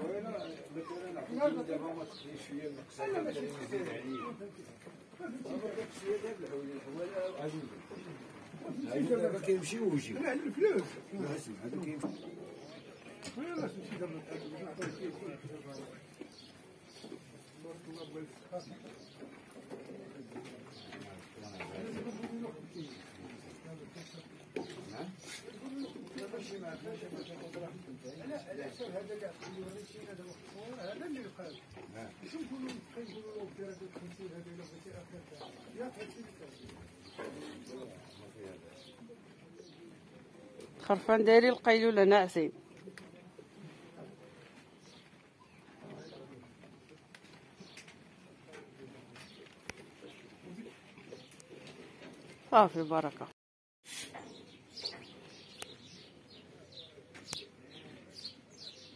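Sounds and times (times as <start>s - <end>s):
faint voices: 0.0s - 41.4s, 42.4s - 53.3s
pigeons cooing: 17.8s - 40.8s, 48.5s - 52.2s.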